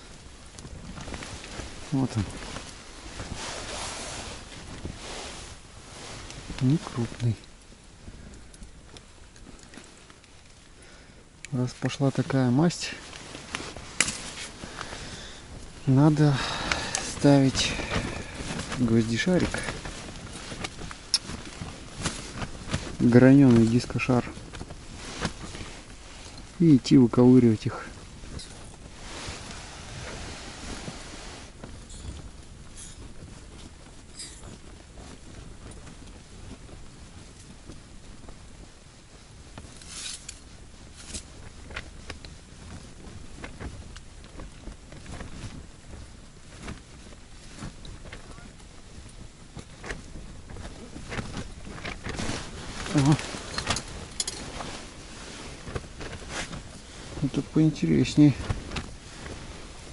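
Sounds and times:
low steady hiss: 0.0s - 59.9s
hands handling fishing rod and reel: 13.1s - 15.0s, 50.7s - 56.8s.

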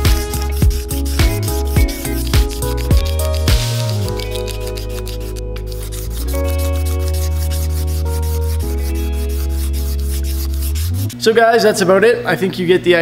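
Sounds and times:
background music with held chords: 0.0s - 11.2s
razor blade scraping wood: 0.0s - 11.2s.

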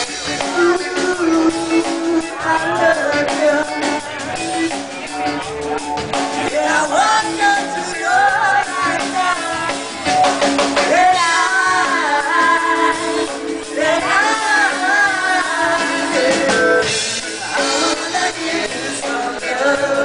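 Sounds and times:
drum kit: 0.0s - 20.0s
man singing: 0.0s - 20.0s.

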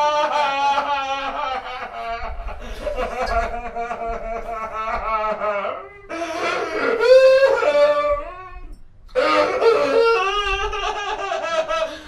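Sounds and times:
man wailing into a microphone: 5.2s - 11.1s.

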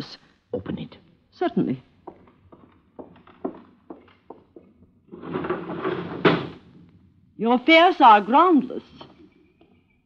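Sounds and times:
footsteps crossing a room: 1.8s - 7.0s.

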